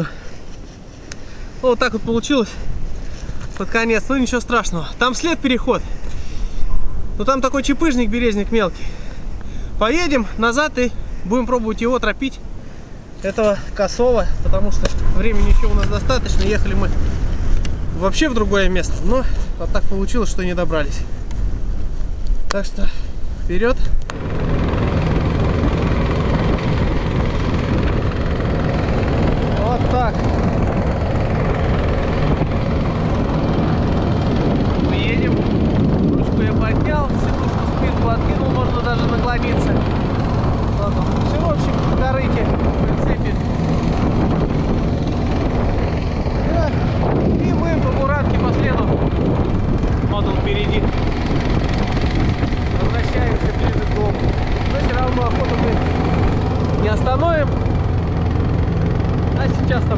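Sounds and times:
small engine running under load: 24.1s - 59.9s.

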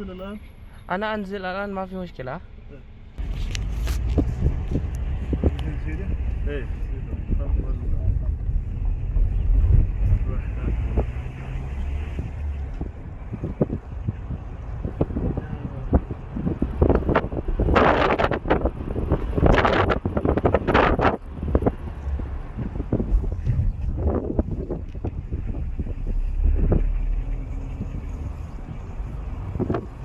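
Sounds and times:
wind buffeting microphone: 3.2s - 30.0s.

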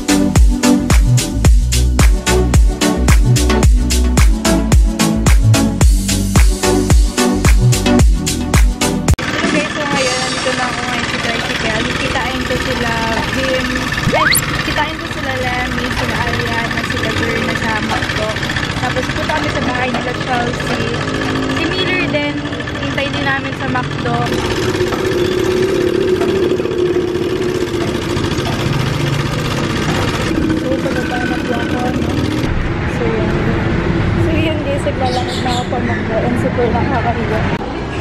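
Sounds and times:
motorcycle engine running: 10.5s - 32.6s
voices talking: 34.4s - 38.0s.

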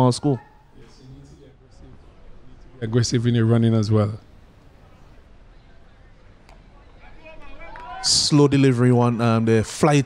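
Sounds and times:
faint open-air ground noise: 0.0s - 9.9s.

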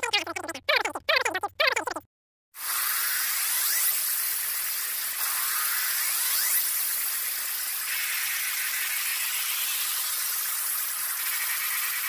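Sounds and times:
harsh high-pitched static noise: 3.4s - 12.0s.

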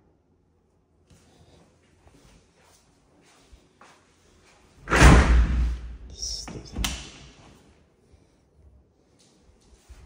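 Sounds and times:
door opening rush: 4.8s - 5.8s.

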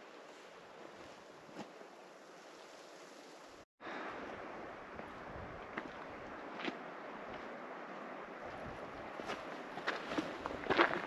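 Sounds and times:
footsteps on rocky dirt trail: 4.9s - 11.0s.

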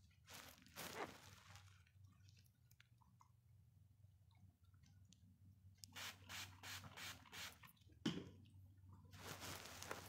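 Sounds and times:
short hissing grooming strokes: 6.0s - 7.6s.

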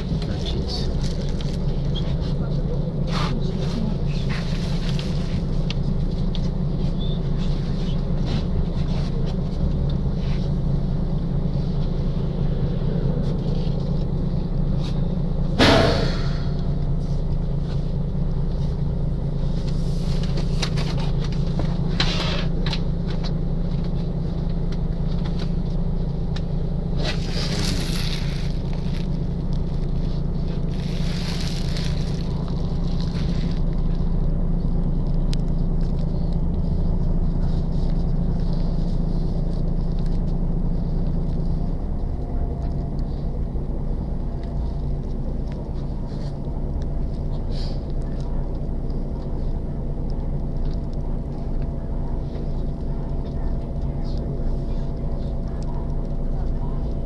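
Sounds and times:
low engine drone: 0.0s - 57.0s
sharp knock: 15.6s - 16.6s.

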